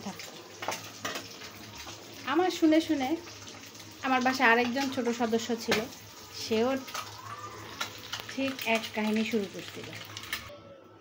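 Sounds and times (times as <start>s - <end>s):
hot oil sizzling: 0.0s - 10.5s.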